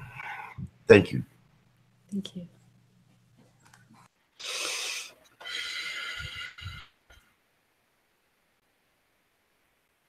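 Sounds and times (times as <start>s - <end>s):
man breathing deeply: 4.4s - 7.0s.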